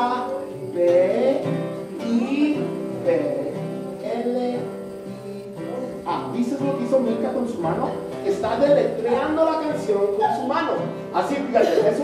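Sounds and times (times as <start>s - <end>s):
person singing children's song: 0.0s - 7.6s
acoustic guitar strumming: 0.0s - 12.0s.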